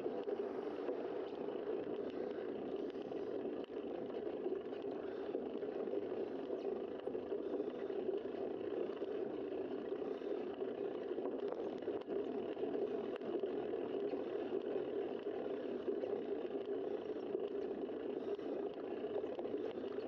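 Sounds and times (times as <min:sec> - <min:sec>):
bicycle tyre noise: 0:00.0 - 0:20.0.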